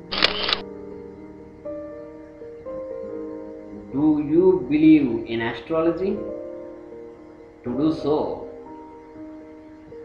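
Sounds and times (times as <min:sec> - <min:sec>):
instrumental background music: 0:00.0 - 0:10.0
short burst of noise: 0:00.1 - 0:00.6.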